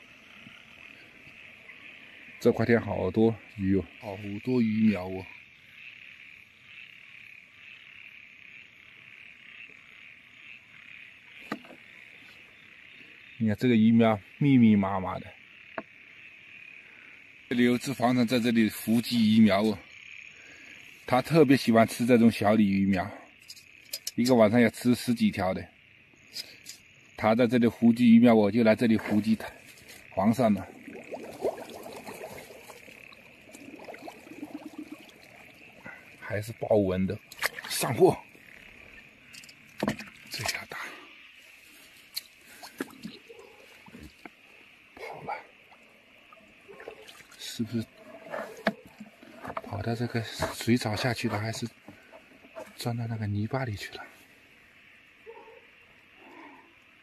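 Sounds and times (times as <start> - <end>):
frogs and insects trilling: 0.0 - 57.0
steady high hiss: 23.6 - 46.8
water sloshing and trickling: 27.9 - 40.8, 41.4 - 53.0.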